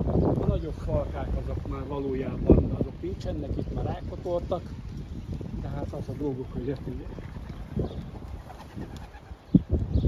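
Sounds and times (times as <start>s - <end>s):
pigeons cooing: 6.4s - 10.0s.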